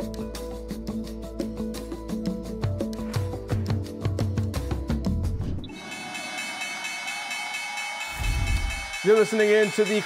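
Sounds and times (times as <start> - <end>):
electric bell ringing: 5.7 - 10.0.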